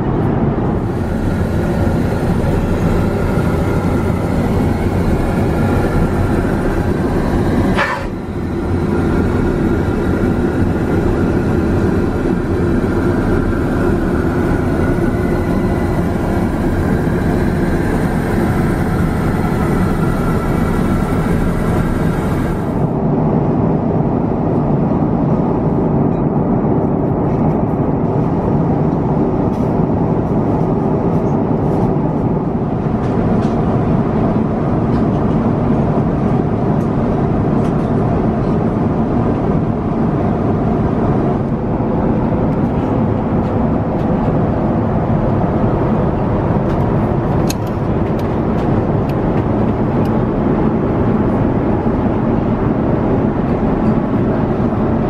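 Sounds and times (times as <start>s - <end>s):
airplane cabin drone: 0.0s - 55.0s.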